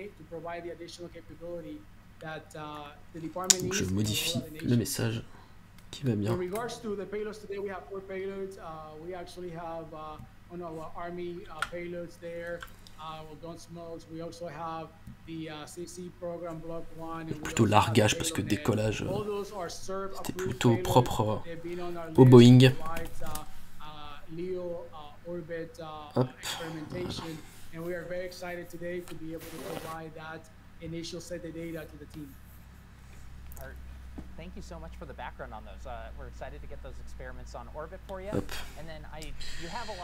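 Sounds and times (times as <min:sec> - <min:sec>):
man speaking: 0:00.0 - 0:32.4, 0:34.4 - 0:40.0
man talking: 0:00.0 - 0:32.4, 0:34.4 - 0:40.0.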